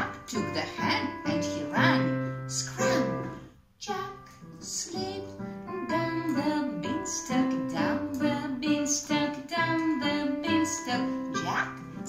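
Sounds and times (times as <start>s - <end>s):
piano: 0.0s - 12.0s
woman singing: 0.0s - 12.0s.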